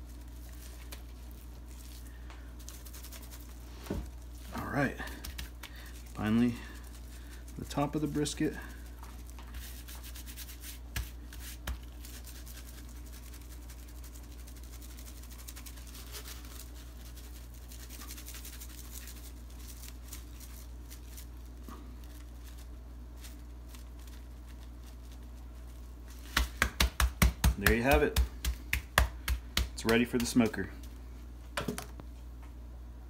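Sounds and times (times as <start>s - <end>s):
patter of grains landing on meat: 0.0s - 12.0s, 12.8s - 31.0s
hand slapping meat: 5.1s - 5.8s, 10.7s - 11.9s, 26.2s - 30.6s.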